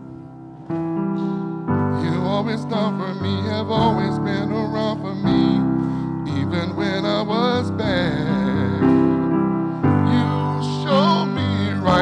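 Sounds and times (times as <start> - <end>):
sustained keyboard chords: 0.0 - 12.0
man singing with vibrato: 2.0 - 12.0.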